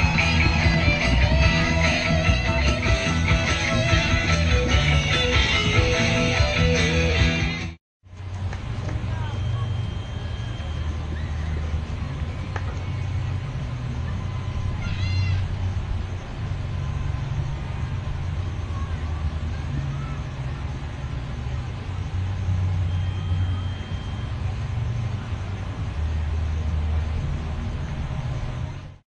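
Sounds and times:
low rumble: 0.0 - 7.3, 8.1 - 29.0
thin steady whistle: 9.1 - 13.4, 22.5 - 24.6
short high chirp: 22.8 - 24.4.

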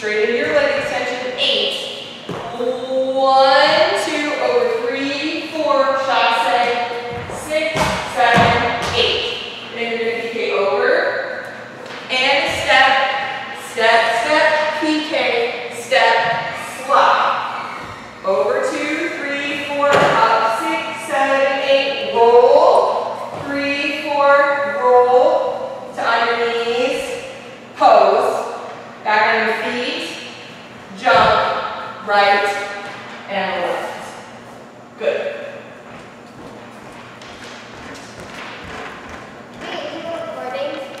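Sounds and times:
person speaking indistinctly: 39.6 - 41.0.

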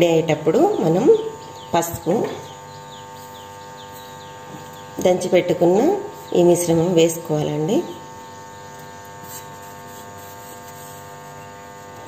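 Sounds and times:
steady hum: 0.0 - 12.0
small bird chirping: 0.7 - 9.7.

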